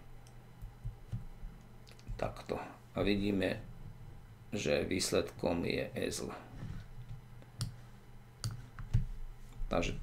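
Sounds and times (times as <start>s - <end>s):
faint low hum: 0.0s - 10.0s
computer mouse clicks: 8.4s - 9.1s.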